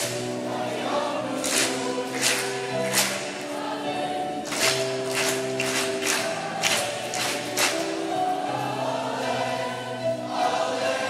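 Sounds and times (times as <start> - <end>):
choir singing in parts: 0.0 - 11.0
hands clapping: 1.4 - 3.6, 4.4 - 8.2.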